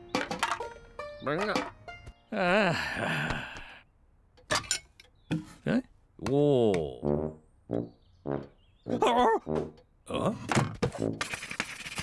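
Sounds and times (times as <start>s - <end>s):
light cartoon music: 0.0s - 2.6s, 6.5s - 12.0s
wordless character vocalization: 2.3s - 3.8s.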